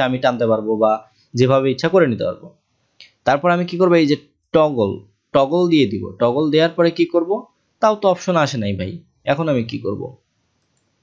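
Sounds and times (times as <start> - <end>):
man speaking: 0.0 - 10.2
computer mouse click: 10.6 - 11.0.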